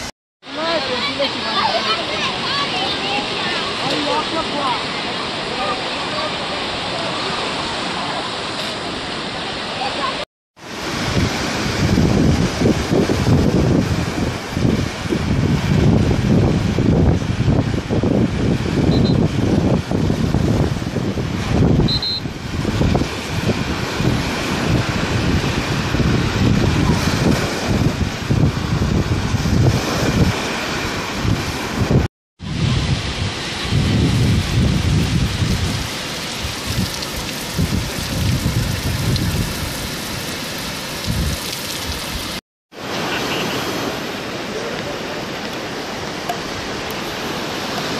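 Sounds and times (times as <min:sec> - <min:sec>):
sea surf rushing: 0:00.0 - 0:47.9
wind buffeting microphone: 0:10.6 - 0:42.4.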